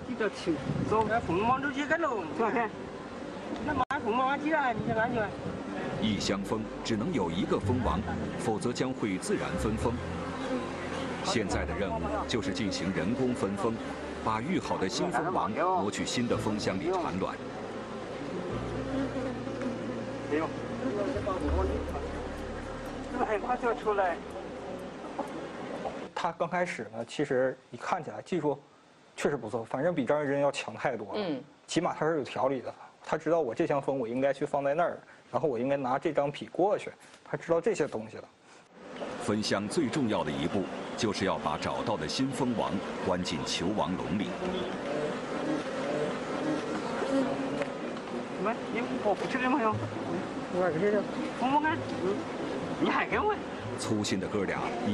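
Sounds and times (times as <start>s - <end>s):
honeybees buzzing: 0.1s - 26.1s, 38.8s - 54.9s
low steady hum: 2.7s - 15.2s, 16.0s - 26.1s.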